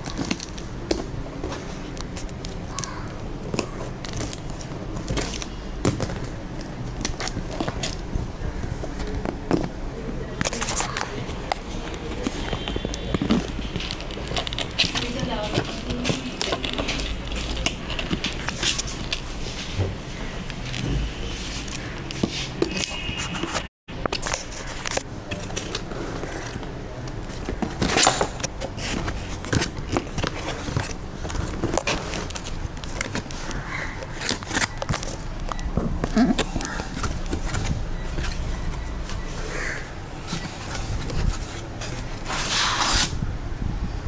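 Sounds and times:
cardboard box rustling and scraping: 3.3s - 43.2s.

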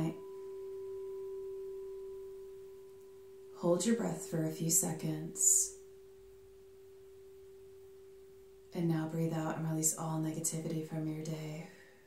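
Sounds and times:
crystal singing bowl ringing: 0.0s - 12.0s.

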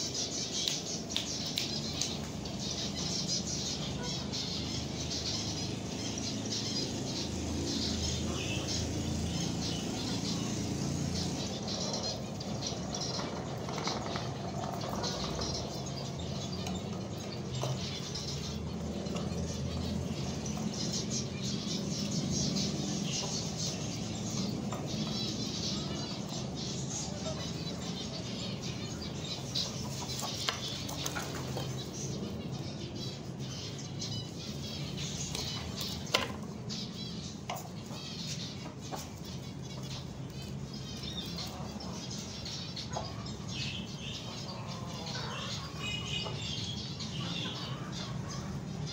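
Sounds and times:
finches chirping: 0.0s - 48.9s.

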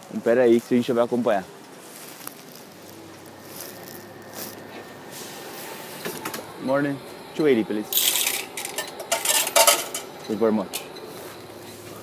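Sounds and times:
coins clinking in tray: 8.0s - 10.1s.

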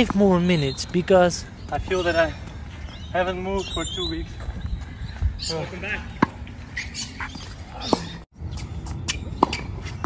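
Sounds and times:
tennis balls struck by rackets: 6.0s - 10.0s.

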